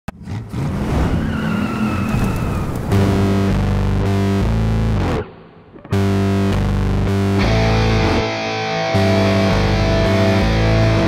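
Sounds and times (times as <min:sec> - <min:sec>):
car tyres squealing: 0:00.2 - 0:03.1
distorted electric guitar chord: 0:03.0 - 0:11.0.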